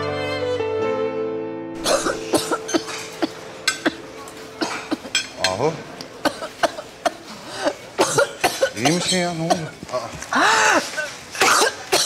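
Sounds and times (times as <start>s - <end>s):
string music: 0.0s - 6.1s
cutlery clinking on plates: 2.1s - 7.2s.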